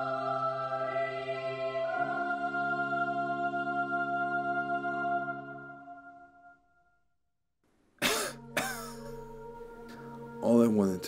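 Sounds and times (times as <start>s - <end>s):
man coughing: 8.0s - 9.2s
low sustained music chord: 8.1s - 11.0s.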